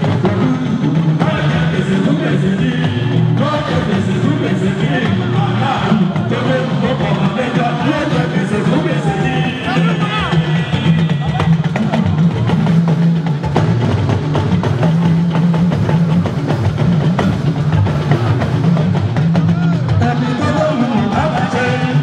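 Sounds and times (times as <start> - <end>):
dense drumming and percussion: 0.0 - 22.0
heavy bass line: 0.0 - 22.0
live band music: 0.0 - 22.0.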